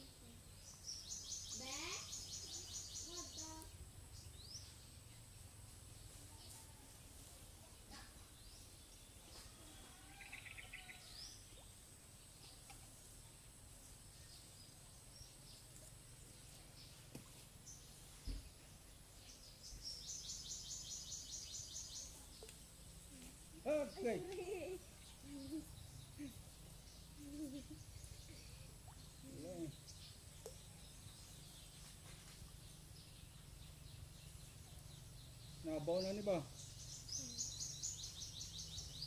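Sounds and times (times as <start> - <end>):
soft thump: 18.2 - 18.5
bird chirps: 23.6 - 39.0.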